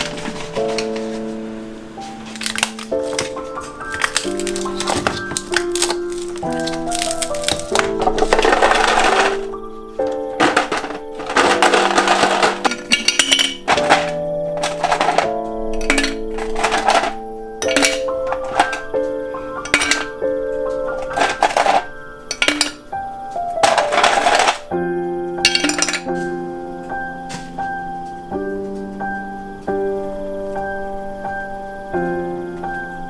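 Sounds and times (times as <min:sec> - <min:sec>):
sustained background chords: 0:00.0 - 0:33.0
ice cube tray twisting: 0:02.3 - 0:09.5, 0:10.3 - 0:18.9, 0:20.9 - 0:22.8, 0:23.6 - 0:24.7
ice cubes clattering into plastic bin: 0:02.3 - 0:22.9, 0:23.6 - 0:24.7, 0:25.4 - 0:26.2.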